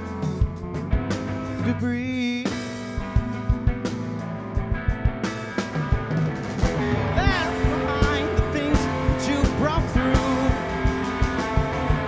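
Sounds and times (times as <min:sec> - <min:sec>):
distorted electric guitar lead: 0:00.0 - 0:12.0
steady drum beat: 0:00.0 - 0:12.0.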